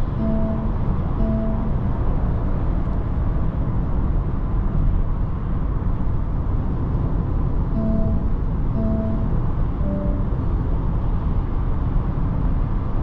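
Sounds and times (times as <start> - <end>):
car cabin road and wind noise: 0.0 - 13.0.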